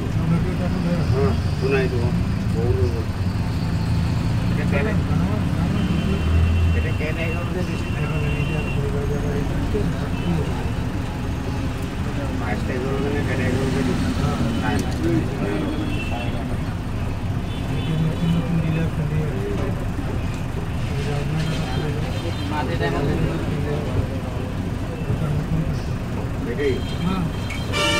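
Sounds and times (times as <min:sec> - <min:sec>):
people's voices: 0:00.0 - 0:27.9
vehicle engines in slow traffic: 0:00.0 - 0:27.9.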